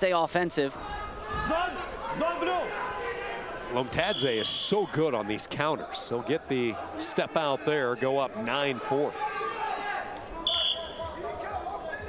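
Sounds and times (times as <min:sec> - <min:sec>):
arena crowd hum: 0:00.0 - 0:12.0
referee whistle blast: 0:04.0 - 0:04.7, 0:10.4 - 0:11.0.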